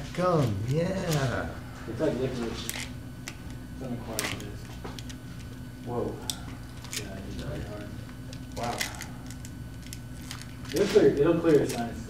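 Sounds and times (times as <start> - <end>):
low room hum: 0.0 - 12.0
sharp clicks and handling noises: 2.6 - 5.6, 6.2 - 12.0.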